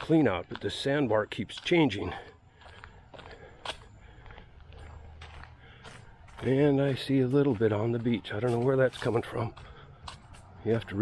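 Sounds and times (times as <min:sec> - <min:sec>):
footsteps on dirt path: 0:00.0 - 0:11.0.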